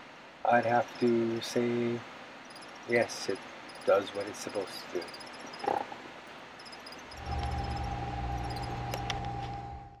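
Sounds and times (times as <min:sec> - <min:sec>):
faint high-pitched chirping: 0:00.6 - 0:06.0, 0:06.6 - 0:09.7
electric hum with whine: 0:06.7 - 0:10.0.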